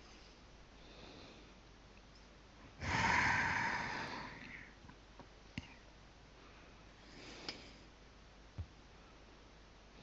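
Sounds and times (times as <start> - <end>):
heavy exhale into microphone: 2.8 - 4.8.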